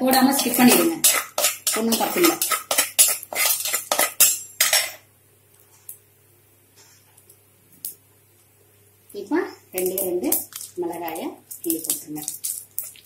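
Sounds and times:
spatula scraping clay pot: 0:00.3 - 0:04.9.

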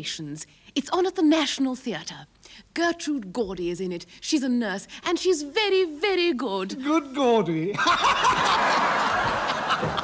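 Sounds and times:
group laughing: 0:07.7 - 0:10.0.

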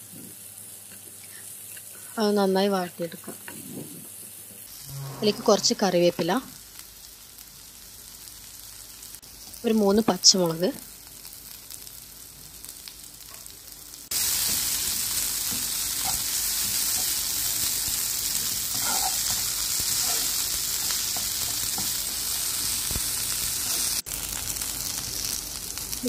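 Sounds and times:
vegetables sizzling in a frying pan: 0:00.0 - 0:26.0
spatula stirring in pan: 0:14.2 - 0:22.3.

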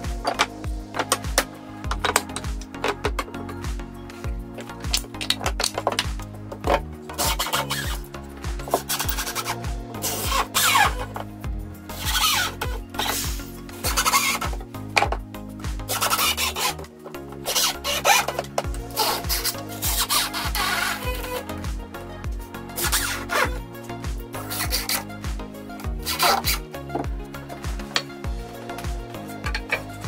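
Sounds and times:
background music with beat: 0:00.0 - 0:30.0.

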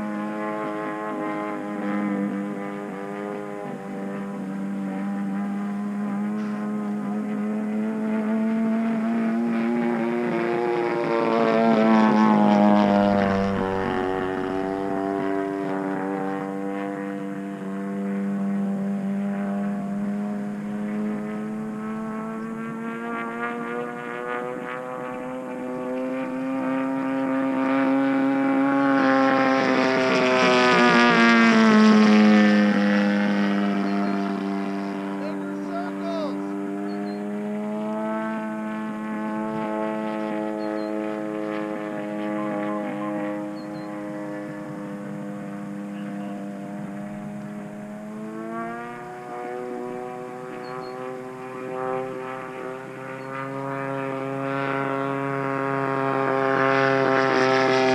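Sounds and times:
model airplane engine droning: 0:00.0 - 0:57.9.

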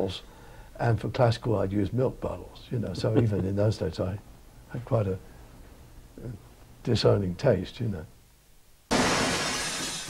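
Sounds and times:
glass bottle smashing: 0:08.9 - 0:10.0.

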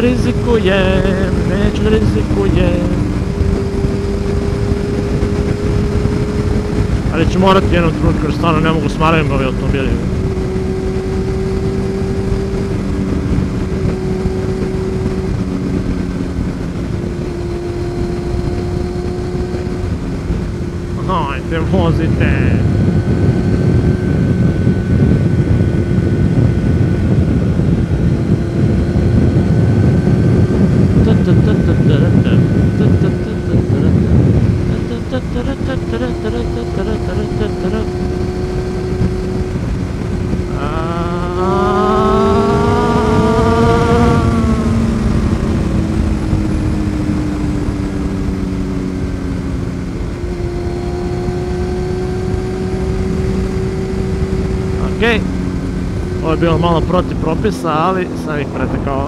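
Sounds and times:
motorcycle engine revving: 0:00.0 - 0:59.0
wind rush: 0:00.0 - 0:59.0.

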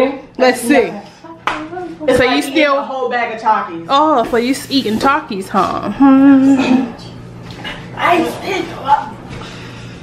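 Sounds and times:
person humming hmm: 0:05.8 - 0:06.9.

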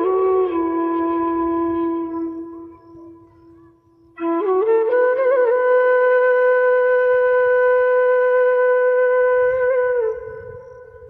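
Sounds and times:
flute holding long note: 0:00.0 - 0:11.0.

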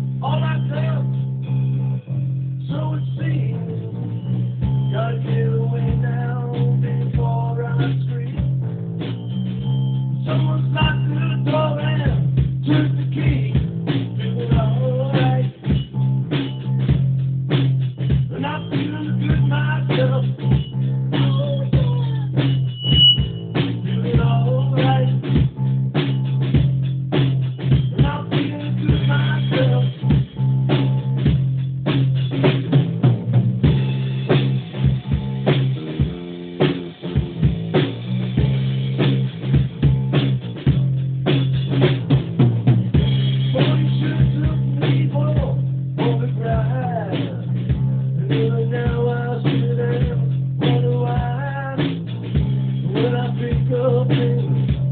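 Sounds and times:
drum and cymbal hits: 0:04.6 - 0:54.9.

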